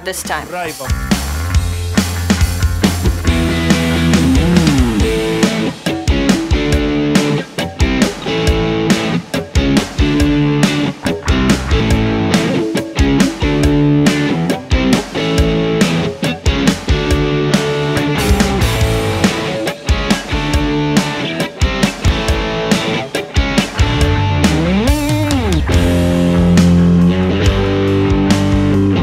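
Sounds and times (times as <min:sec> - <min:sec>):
overdriven electric guitar riffs: 0:00.8 - 0:29.0.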